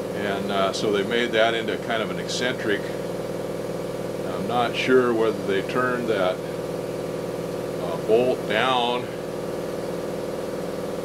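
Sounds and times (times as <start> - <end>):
motor humming: 0.0 - 11.0.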